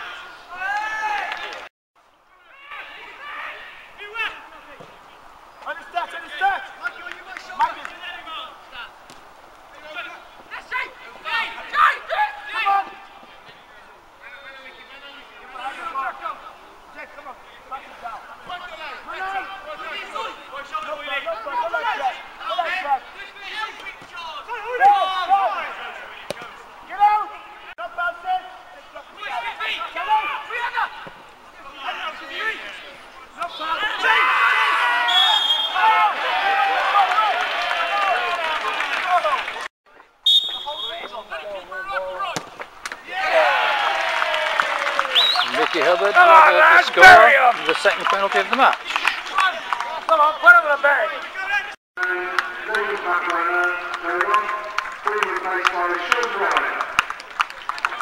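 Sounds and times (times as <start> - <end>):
men talking and calling out: 2.1 - 57.2.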